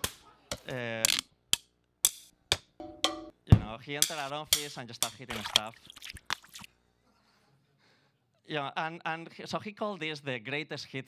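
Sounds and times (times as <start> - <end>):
drumstick striking hard objects: 0.0 - 5.6.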